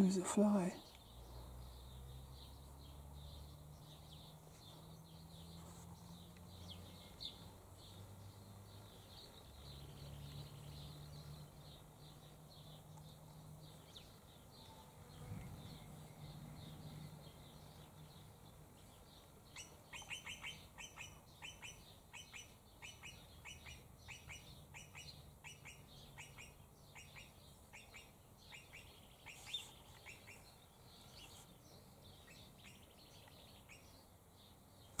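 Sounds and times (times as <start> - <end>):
bird chirping rapidly: 19.0 - 34.1.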